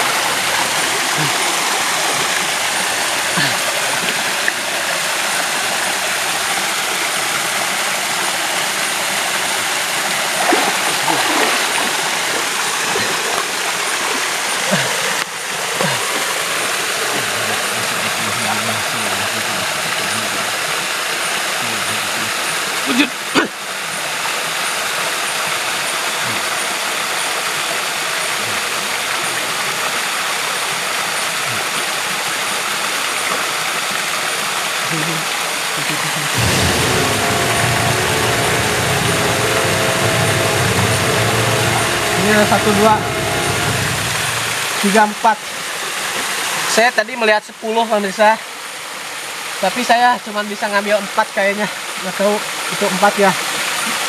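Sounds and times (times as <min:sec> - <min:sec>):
river water rushing: 0:00.0 - 0:19.0.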